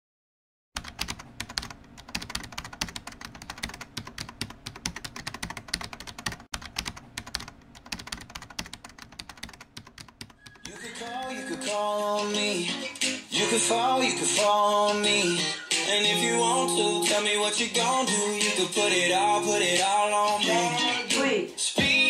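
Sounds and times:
computer keyboard typing: 0.8s - 11.3s.

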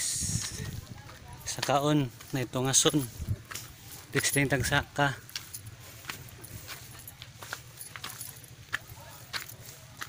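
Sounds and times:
man speaking: 1.4s - 3.2s, 4.1s - 5.3s.

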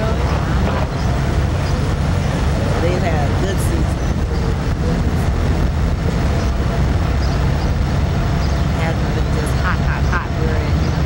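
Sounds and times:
street traffic rumble: 0.0s - 11.0s.

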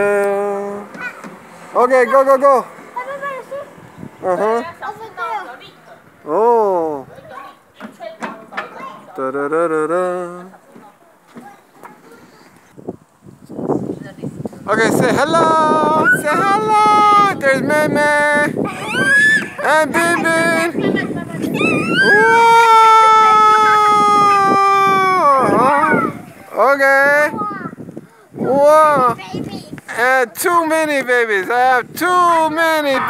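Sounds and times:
faint children's voices: 0.7s - 6.3s, 6.9s - 12.8s, 15.4s - 26.6s, 27.2s - 29.9s
child crying out: 15.8s - 16.7s, 18.7s - 19.7s, 21.5s - 26.2s.

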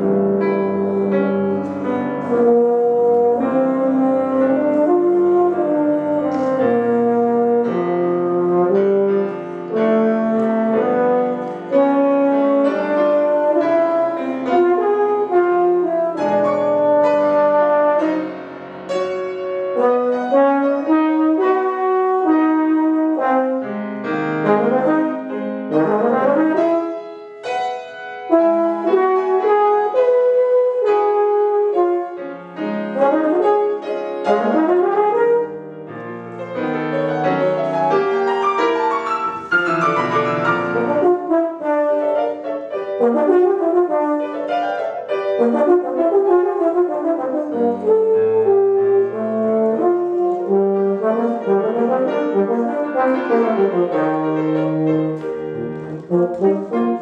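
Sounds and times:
euphonium melody: 0.0s - 57.0s
piano accompaniment: 0.0s - 57.0s.

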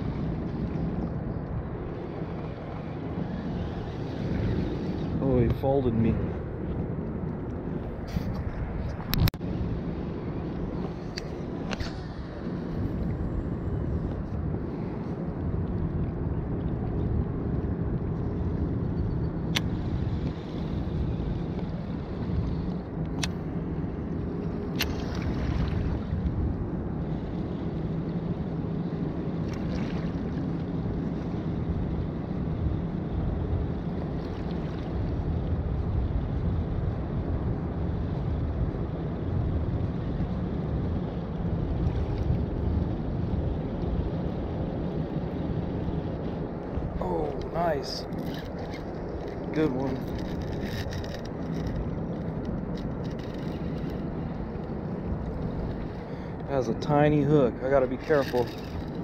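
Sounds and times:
wind rumbling on microphone: 0.0s - 59.0s.

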